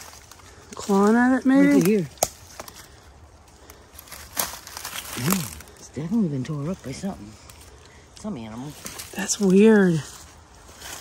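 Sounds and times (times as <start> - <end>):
dry leaves and twigs crunching: 0.0 - 11.0.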